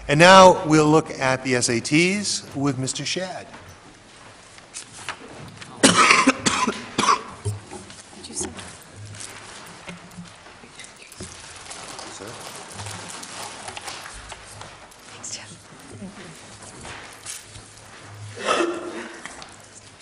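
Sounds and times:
low room noise: 0.0s - 20.0s
person coughing: 5.8s - 7.4s, 18.4s - 19.3s.

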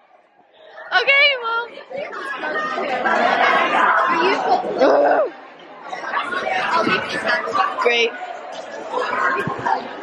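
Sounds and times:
chatter of many people: 0.0s - 10.0s.

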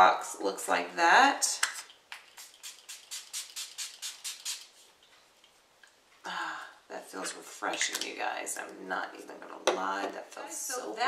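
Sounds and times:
spray bottle spraying: 2.1s - 4.9s.

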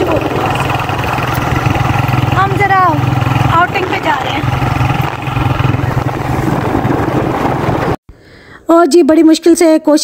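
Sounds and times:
motorcycle engine running: 0.0s - 8.0s
road noise: 0.0s - 8.0s.

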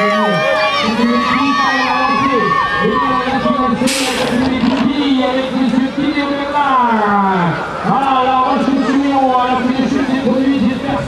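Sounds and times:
man commentating: 0.0s - 11.0s.

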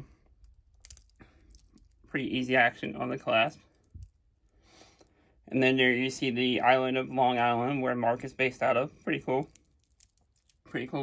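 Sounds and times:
metal watch bracelet rattling: 0.4s - 2.1s, 3.7s - 4.6s, 9.3s - 10.7s.

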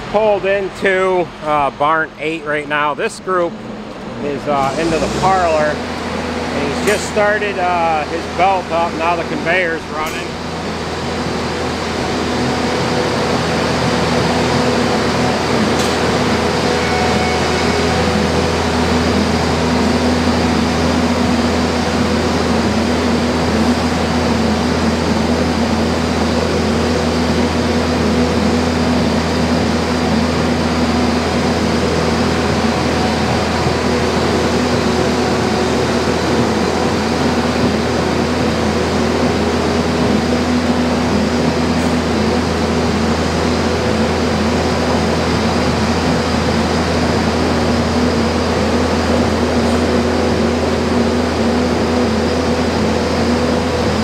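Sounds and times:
truck conveyor machine drone: 0.0s - 54.0s.

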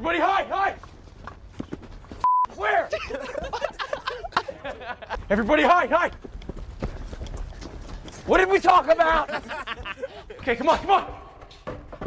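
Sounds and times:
footsteps on dirt and gravel: 0.7s - 2.3s, 5.2s - 12.0s.

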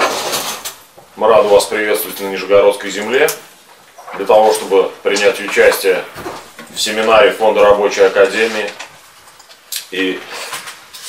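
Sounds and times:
man speaking: 1.2s - 3.4s, 4.1s - 8.8s, 9.9s - 10.4s.

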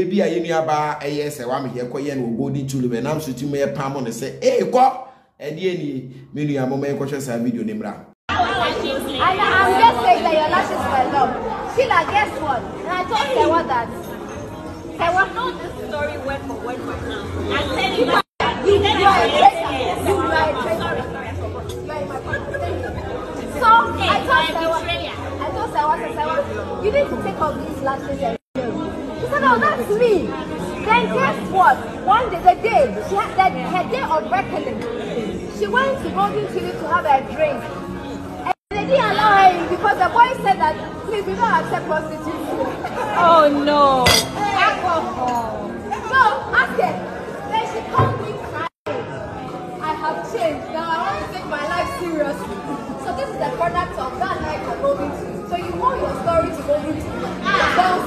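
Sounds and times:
background music: 0.0s - 58.0s
people talking over one another: 8.3s - 58.0s
tableware clinking: 44.0s - 44.6s.

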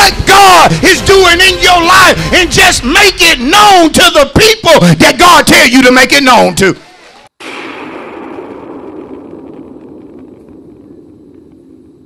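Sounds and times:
rumbling whoosh: 7.6s - 12.0s.

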